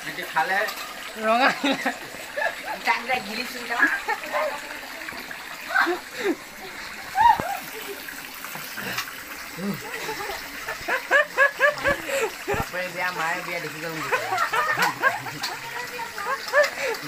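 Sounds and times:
water running from tap: 0:00.0 - 0:17.0
person crying out: 0:05.7 - 0:06.4, 0:07.1 - 0:07.7, 0:09.6 - 0:09.9
wavering vocal sounds: 0:08.8 - 0:10.1.

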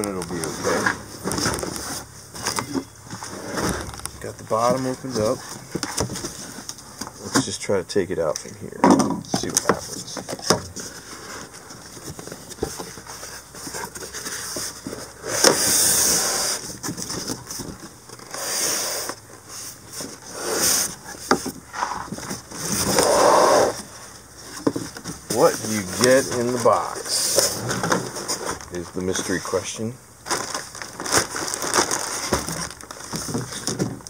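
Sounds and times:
cardboard and styrofoam scraping: 0:00.0 - 0:07.5, 0:09.6 - 0:29.6, 0:30.2 - 0:34.0.

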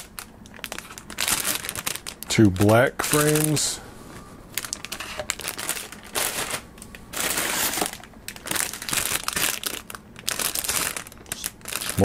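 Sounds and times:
plastic bags crinkling: 0:00.0 - 0:03.8, 0:04.5 - 0:12.0.

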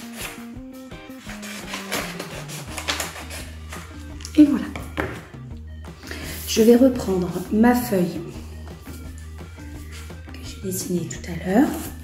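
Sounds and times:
scissors cutting paper: 0:00.0 - 0:00.5, 0:01.1 - 0:04.4
background music: 0:00.0 - 0:12.0.

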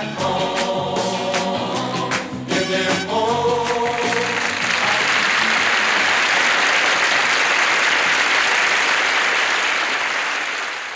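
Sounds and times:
audience applauding: 0:03.7 - 0:10.9.

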